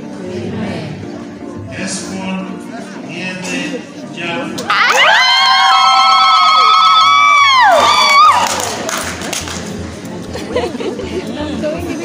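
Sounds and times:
crowd cheering: 4.7s - 9.2s.

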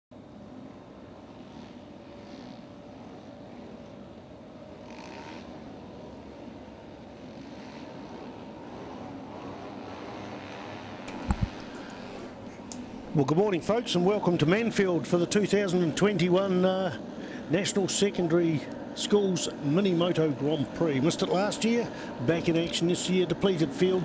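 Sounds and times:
distant mini motorbike engines humming: 0.2s - 24.0s.

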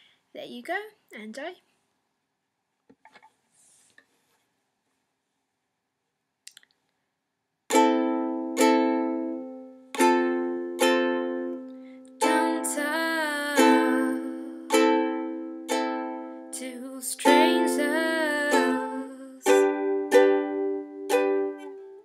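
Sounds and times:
ukulele strummed chords: 7.7s - 22.0s.

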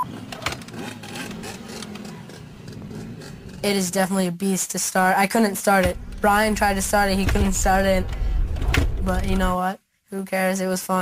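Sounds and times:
dirt bike engine: 0.0s - 3.9s, 5.8s - 9.6s.

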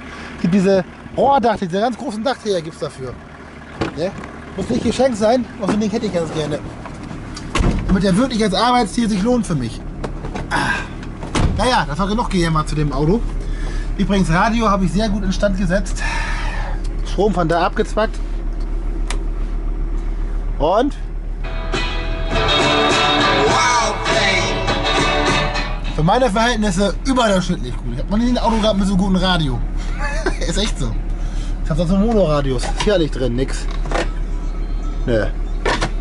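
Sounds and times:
diesel engine idling: 0.0s - 36.0s.

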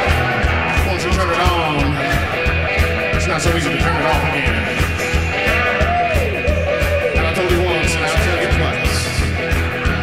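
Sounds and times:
rock band instrumental: 0.0s - 10.0s.

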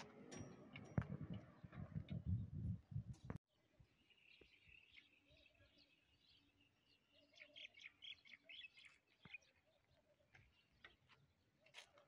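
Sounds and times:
faint birds chirping: 0.2s - 12.0s.

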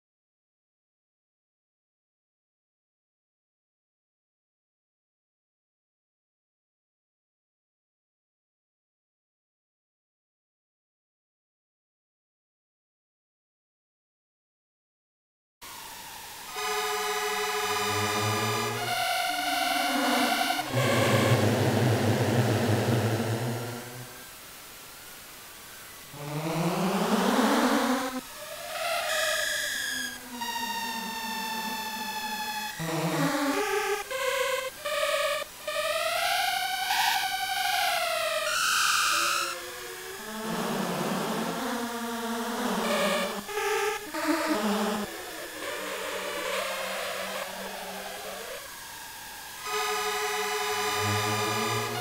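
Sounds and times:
synthesized chord tones: 16.5s - 24.2s, 49.6s - 52.0s
low synthesized tone: 17.5s - 24.2s, 50.7s - 52.0s.

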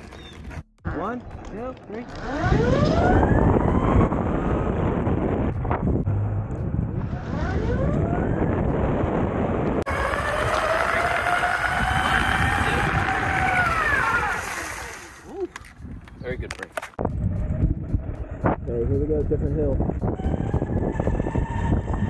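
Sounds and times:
electric motors whining: 2.0s - 5.4s, 6.9s - 15.3s
wind on microphone: 2.1s - 22.0s.

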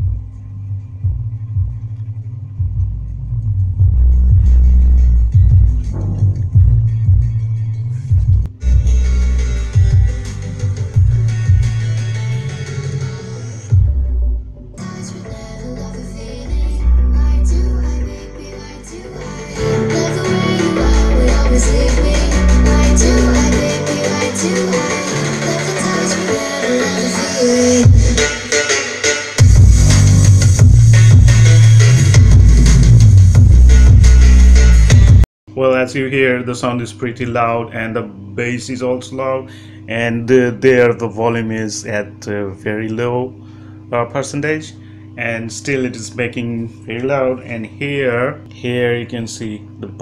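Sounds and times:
music with heavy bass: 0.0s - 35.3s.

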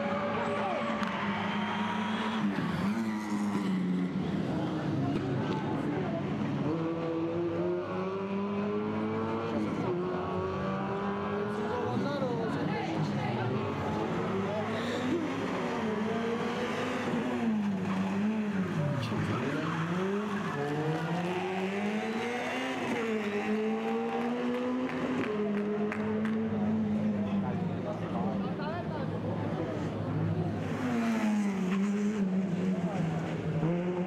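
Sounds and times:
rally car engine revving hard: 30.6s - 34.0s.

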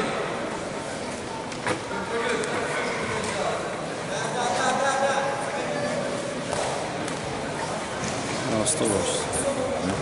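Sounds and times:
noisy hall background: 0.0s - 10.0s.

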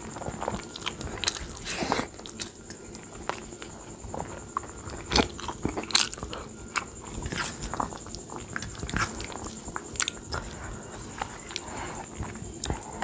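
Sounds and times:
person chewing food: 0.0s - 13.0s.

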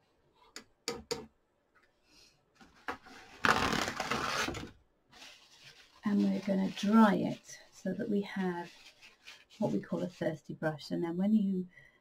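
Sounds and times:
paper towel crackling rustle: 5.1s - 10.4s.

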